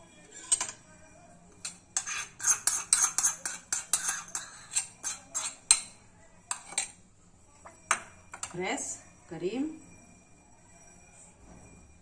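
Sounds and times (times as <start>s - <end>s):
metal ladle clinking and scraping: 0.2s - 0.8s, 1.6s - 7.0s.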